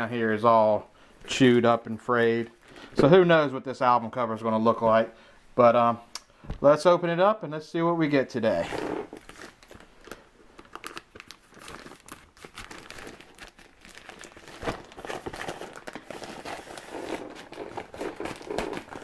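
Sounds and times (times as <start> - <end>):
plastic envelope crinkling: 8.5 - 19.0.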